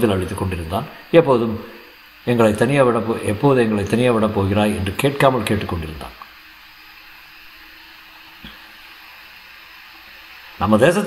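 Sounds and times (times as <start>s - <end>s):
background hiss: 0.0s - 11.0s
faint hum: 0.0s - 11.0s.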